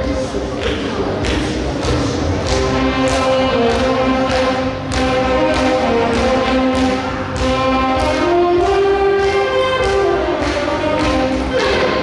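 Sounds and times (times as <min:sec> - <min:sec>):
steady beat: 0:00.0 - 0:12.0
saxophone ensemble playing: 0:02.5 - 0:12.0.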